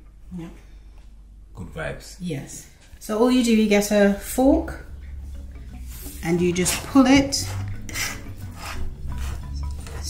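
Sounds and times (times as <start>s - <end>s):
fork scraping on wooden board: 6.0s - 10.0s.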